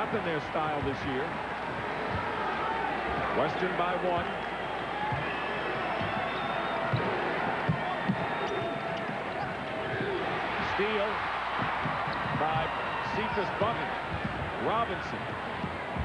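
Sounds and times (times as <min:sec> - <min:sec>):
arena crowd noise: 0:00.0 - 0:16.0
basketball bouncing on hardwood: 0:06.9 - 0:12.9, 0:13.6 - 0:14.6.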